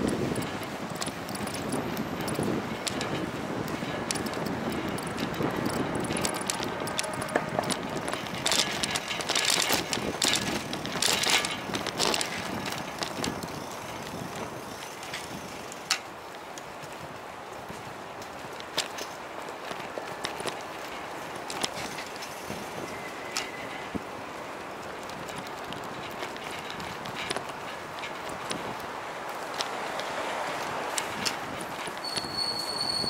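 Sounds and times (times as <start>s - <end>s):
rattling clicks: 0.0s - 14.4s
small clicks and rattles: 0.0s - 16.1s, 18.2s - 23.8s, 24.7s - 32.3s
bicycle tyres rolling on bricks: 0.0s - 33.0s.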